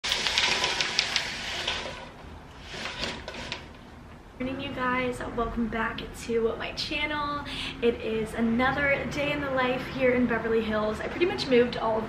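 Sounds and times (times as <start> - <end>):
window blinds rattling and clicking: 0.0 - 3.8.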